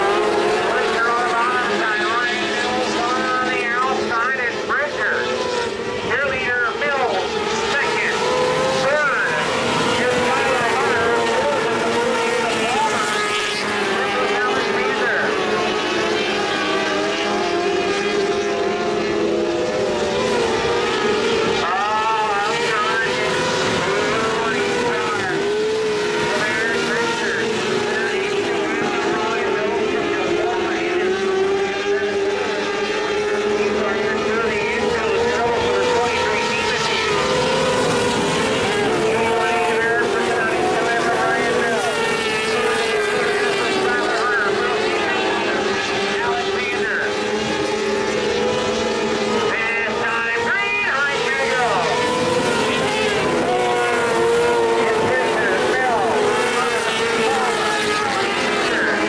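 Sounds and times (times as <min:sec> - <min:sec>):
racing cars high-revving engines: 0:00.0 - 0:59.0.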